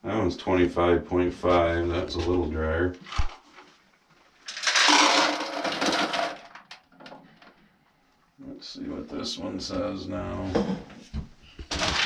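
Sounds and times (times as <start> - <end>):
corn kernels pouring into bucket: 4.5 - 6.8.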